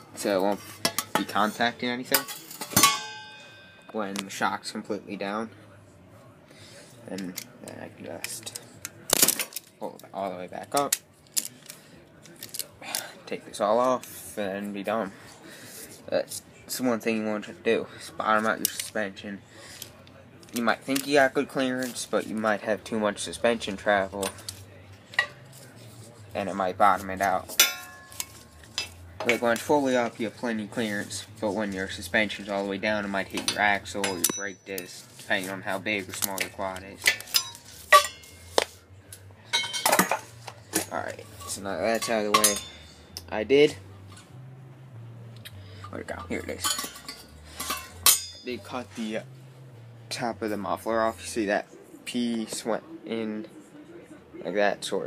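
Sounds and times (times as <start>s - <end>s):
metal parts clinking: 45.8s - 48.5s.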